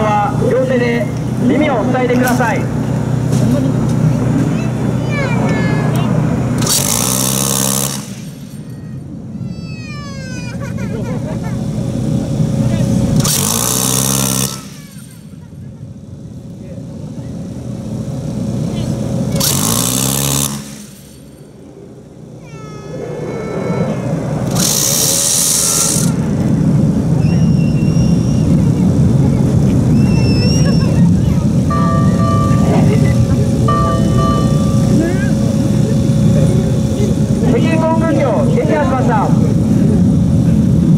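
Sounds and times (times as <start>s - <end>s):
engine hum: 0.0s - 40.9s.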